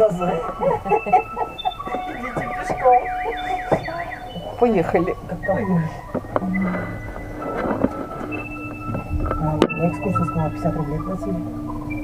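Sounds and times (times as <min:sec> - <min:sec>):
people's voices: 0:00.0 - 0:11.5
background music: 0:00.0 - 0:12.0.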